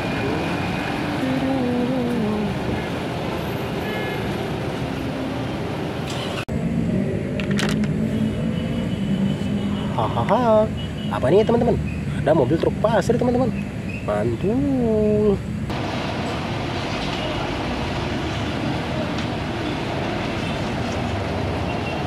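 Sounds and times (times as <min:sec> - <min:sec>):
road traffic noise: 0:00.0 - 0:22.0.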